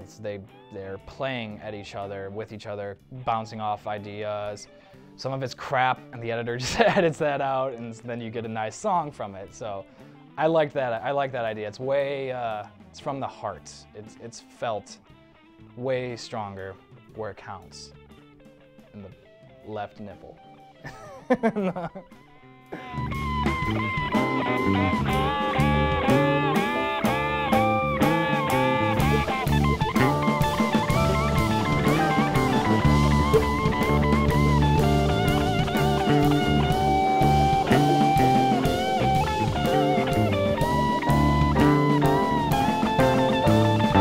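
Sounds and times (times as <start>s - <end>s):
guitar bending notes: 22.0s - 44.0s
drum kit steady beat: 22.7s - 44.0s.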